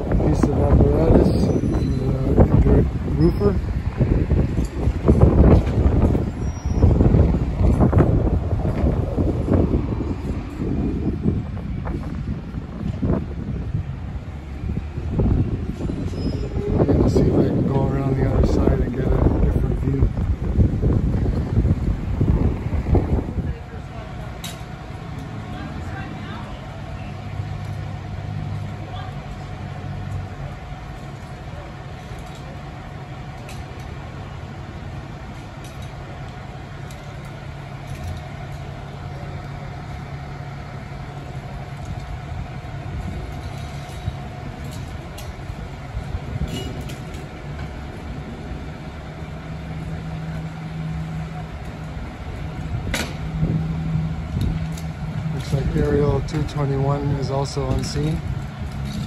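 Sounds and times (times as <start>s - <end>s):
diesel engines idling: 0.0s - 59.0s
light clanks of equipment: 24.4s - 25.6s, 31.0s - 32.6s, 35.3s - 38.8s, 46.4s - 47.7s, 57.4s - 59.0s.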